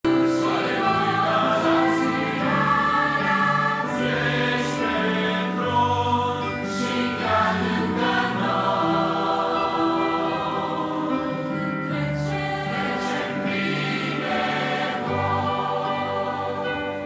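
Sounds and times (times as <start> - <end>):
electronic keyboard: 0.0 - 17.0
choir singing: 0.1 - 17.0.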